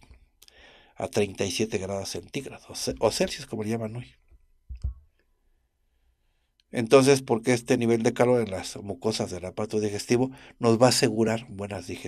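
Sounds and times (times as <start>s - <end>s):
man speaking: 1.0s - 4.1s, 6.7s - 12.0s
mouth click: 4.7s - 5.1s.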